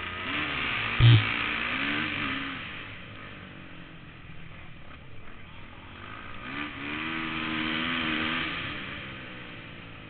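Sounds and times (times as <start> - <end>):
motorcycle engine: 0.0 - 4.5.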